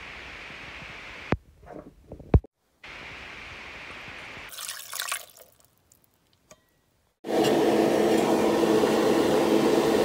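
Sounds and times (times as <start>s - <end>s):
liquid poured into a pot: 4.5s - 6.4s.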